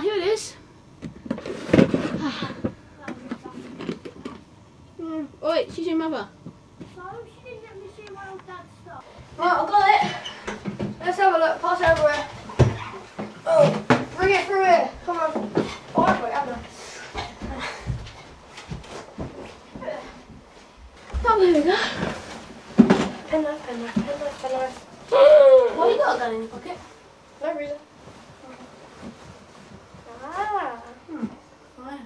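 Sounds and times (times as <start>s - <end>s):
boy speaking: 7.0s - 10.3s, 13.5s - 16.7s, 23.3s - 26.8s.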